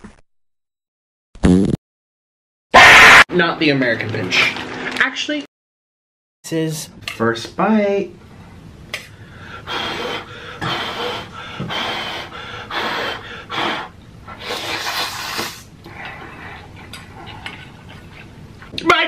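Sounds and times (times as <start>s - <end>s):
person slurping noodles: 14.4s - 16.7s.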